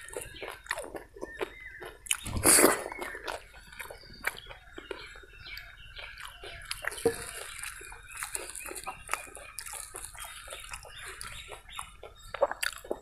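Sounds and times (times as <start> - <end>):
fingers mashing wet food: 0.0 - 13.0.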